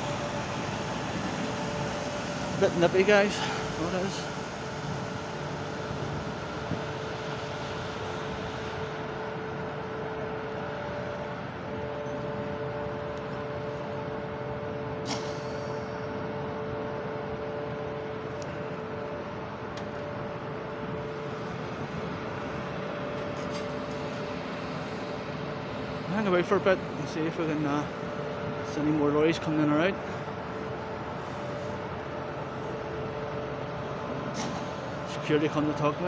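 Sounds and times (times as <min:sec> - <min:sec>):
industrial machinery hum: 0:00.0 - 0:36.0.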